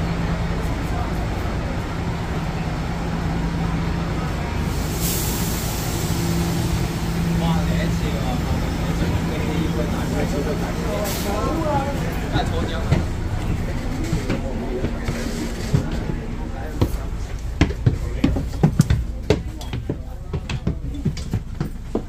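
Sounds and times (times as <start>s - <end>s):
buses idling: 0.0s - 22.0s
compressed air hiss: 4.7s - 7.2s.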